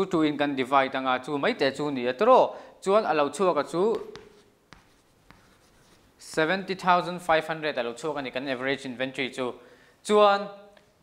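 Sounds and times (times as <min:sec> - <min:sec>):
chalk tapping on blackboard: 0:03.7 - 0:06.8
chalk scratching: 0:03.8 - 0:06.7.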